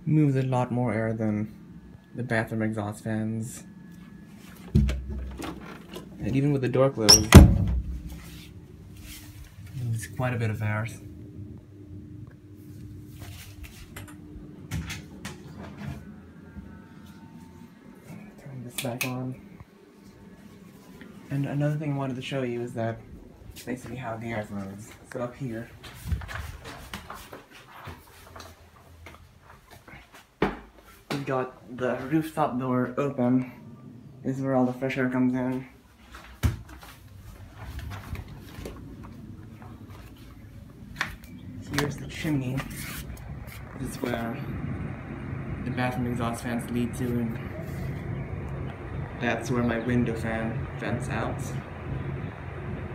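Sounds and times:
low steady rumble: 0.0 - 18.6, 19.3 - 26.5, 37.0 - 52.9
electric fan humming: 0.0 - 29.6, 30.8 - 52.9.

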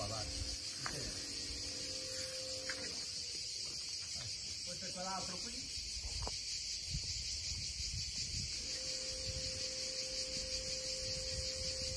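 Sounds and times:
faint steady hum: 0.0 - 3.2, 8.6 - 11.9
cicadas buzzing: 0.0 - 11.9.

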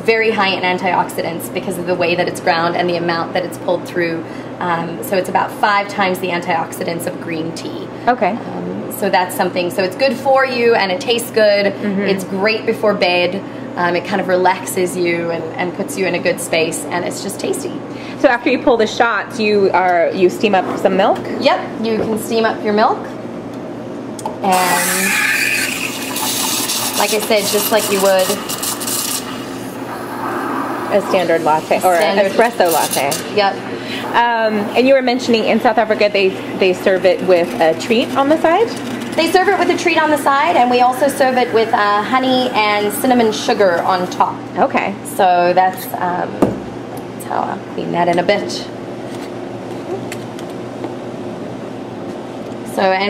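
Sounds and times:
low machine hum: 0.0 - 53.0
steam wand hissing into milk: 24.5 - 33.2, 40.0 - 44.2.

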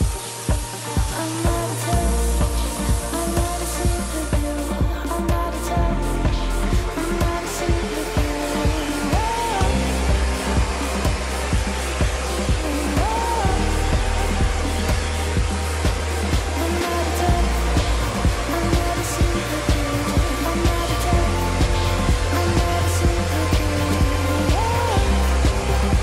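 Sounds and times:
pop music with steady beat: 0.0 - 26.0.

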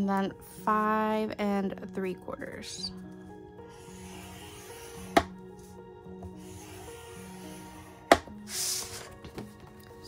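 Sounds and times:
soft background music: 0.0 - 10.0
scoring tool scraping cardstock: 3.8 - 5.3, 6.3 - 9.2.

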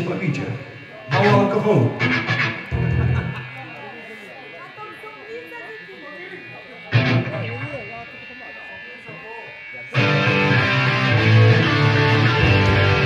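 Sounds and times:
amplifier hum: 0.0 - 13.0
distorted electric guitars and bass: 0.0 - 13.0
loud guitar chord ringing: 0.0 - 13.0
voices: 0.0 - 13.0.

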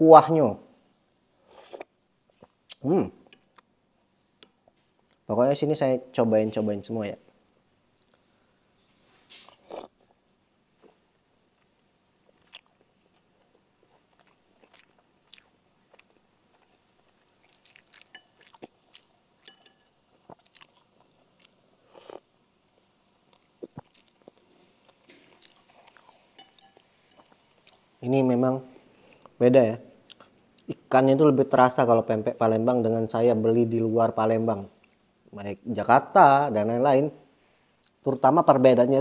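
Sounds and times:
man chewing food: 9.3 - 28.0, 30.0 - 30.8
spoon and fork clicking on bowl: 19.4 - 19.9, 26.4 - 27.4.

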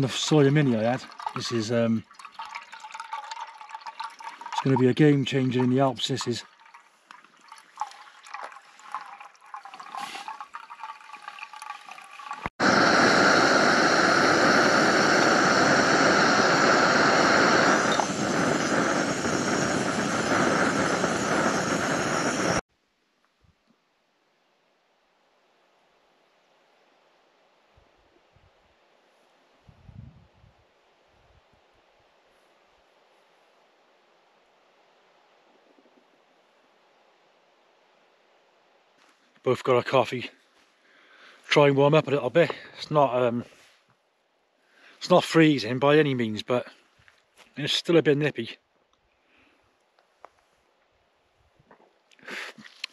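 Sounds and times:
water trickling into metal pot: 0.1 - 12.6
camp stove rushing hiss: 9.9 - 10.4, 12.4 - 22.6, 52.2 - 52.9.

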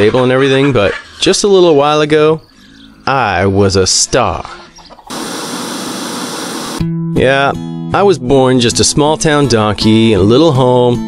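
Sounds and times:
static hiss: 5.1 - 6.8
music with guitar: 6.8 - 7.9.

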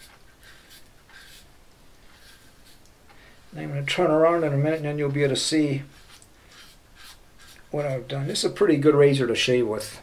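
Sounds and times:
razor scraping stubble: 0.0 - 2.9, 3.5 - 7.9.

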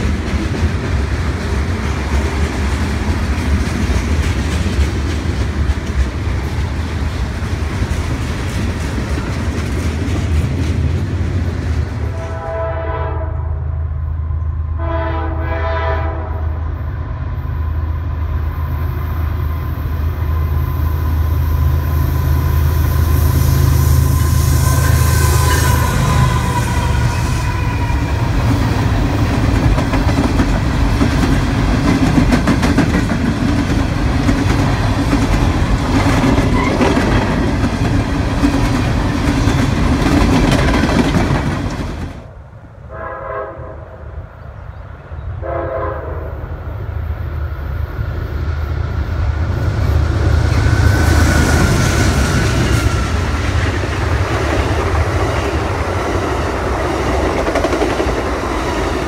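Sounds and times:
train wheels on rails: 0.0 - 12.6, 16.6 - 42.5, 46.5 - 59.0
diesel locomotive engine throb: 0.0 - 44.4
distant train horn blasts: 12.0 - 19.4, 20.2 - 28.5, 42.8 - 44.3, 45.2 - 46.8.

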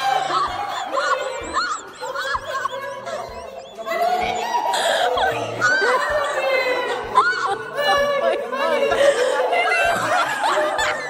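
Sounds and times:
people laughing and shrieking: 0.0 - 11.0.

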